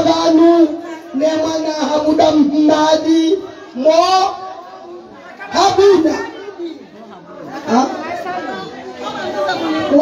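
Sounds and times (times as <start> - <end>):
person speaking into a microphone: 0.0 - 10.0
women talking and chanting: 0.0 - 10.0.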